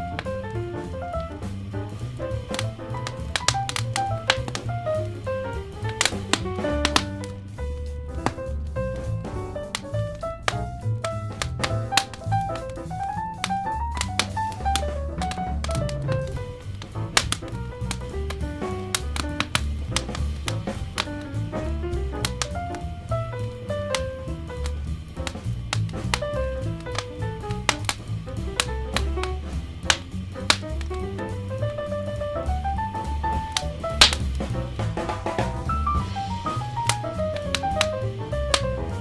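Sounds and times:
crackling wood fire: 0:00.0 - 0:39.0
smooth jazz with bass and drums: 0:00.0 - 0:39.0.

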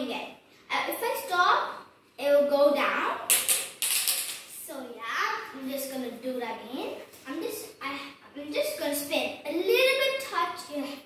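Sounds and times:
girl speaking: 0:00.0 - 0:03.3, 0:04.4 - 0:11.0.

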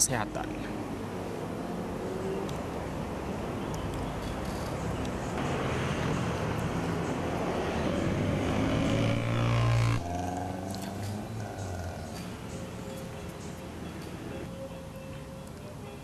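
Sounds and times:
motorcycles and cars passing: 0:00.0 - 0:15.4
engine rising in pitch: 0:04.8 - 0:13.6.

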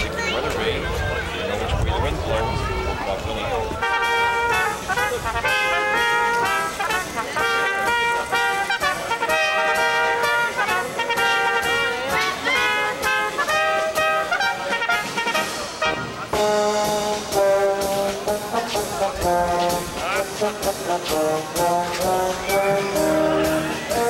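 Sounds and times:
brass band playing: 0:03.7 - 0:24.0.

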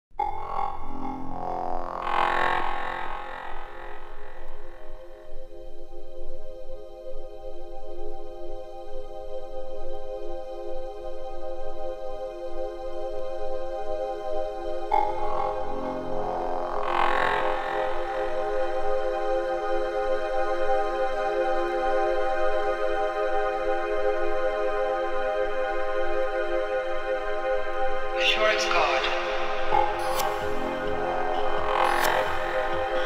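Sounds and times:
electronic synth pads and drone: 0:00.1 - 0:33.0.

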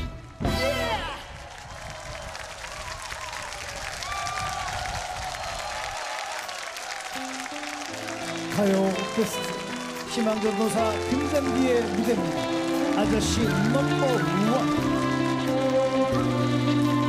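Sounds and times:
audience applauding: 0:00.9 - 0:17.0.

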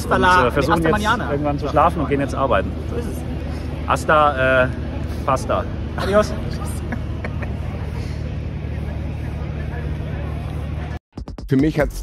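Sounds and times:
faint voices: 0:00.0 - 0:11.0
low outdoor rumble: 0:00.0 - 0:11.0.

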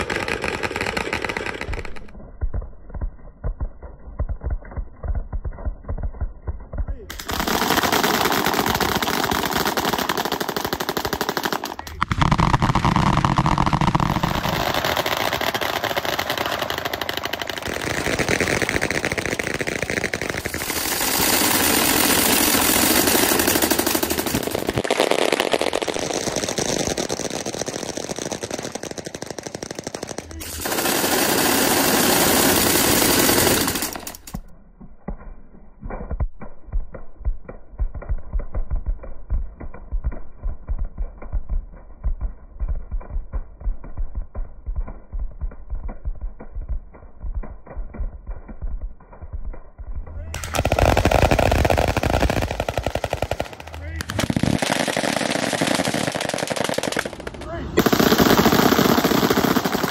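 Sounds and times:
automatic gunfire: 0:00.0 - 0:02.1, 0:07.1 - 0:34.4, 0:50.4 - 0:59.9
low muffled throbbing beat: 0:36.7 - 0:50.3.

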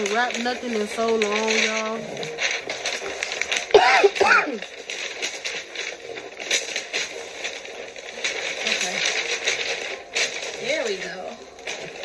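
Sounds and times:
wrapping paper rustling: 0:00.0 - 0:12.0.

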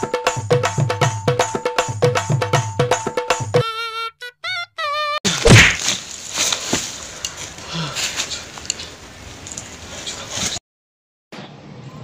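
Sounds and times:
loud thud: 0:05.4 - 0:05.9.

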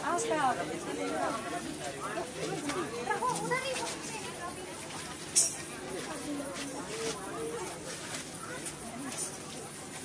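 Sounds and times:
crowd of children and adults chattering: 0:00.0 - 0:10.0.

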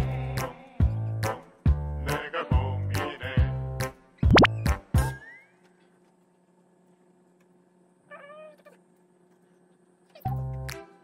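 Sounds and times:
background music: 0:00.0 - 0:05.0.

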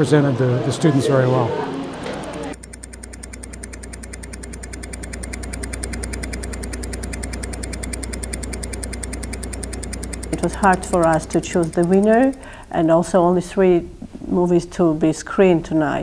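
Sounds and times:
small machine humming and ticking: 0:01.1 - 0:12.9.

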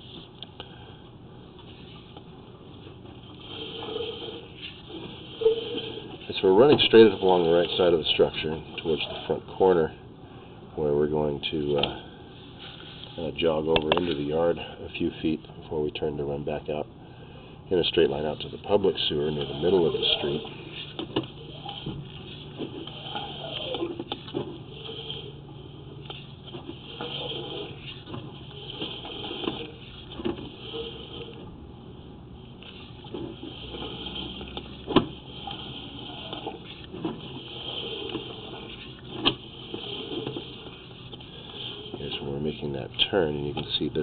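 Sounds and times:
cable rubbing: 0:03.0 - 0:09.5, 0:18.0 - 0:31.5, 0:32.5 - 0:44.0.

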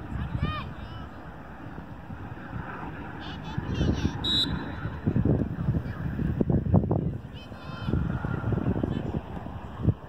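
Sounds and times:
referee's whistle blast: 0:04.2 - 0:04.8.

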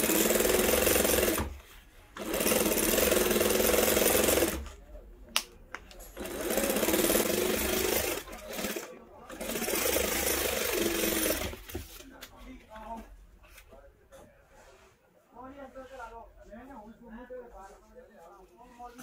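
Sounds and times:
sewing machine stitching leather: 0:00.0 - 0:01.6, 0:02.2 - 0:04.8, 0:06.0 - 0:11.8.

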